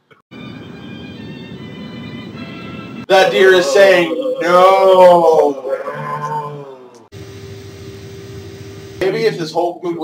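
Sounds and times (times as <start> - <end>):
held tone: 3.2 - 6.4.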